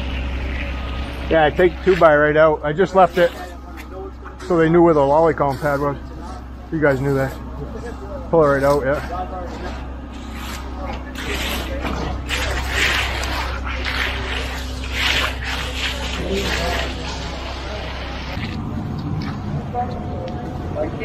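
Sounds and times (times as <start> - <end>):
low engine hum: 0.0 - 21.0
trowels scraping wet concrete: 1.3 - 19.4.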